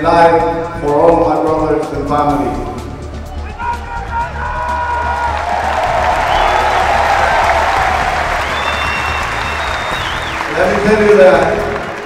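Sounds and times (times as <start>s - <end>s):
stadium crowd applauding and cheering: 3.1s - 12.0s
high whistles: 6.0s - 10.8s.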